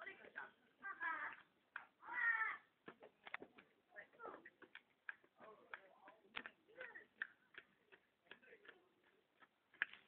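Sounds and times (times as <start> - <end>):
faint irregular clicks: 2.8 - 10.0.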